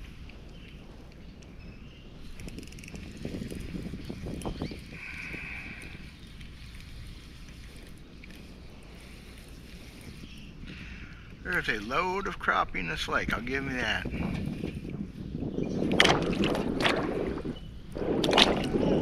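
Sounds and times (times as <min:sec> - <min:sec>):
wind and water rushing: 0:15.7 - 0:19.0
soft knocks and splashes: 0:15.9 - 0:17.4.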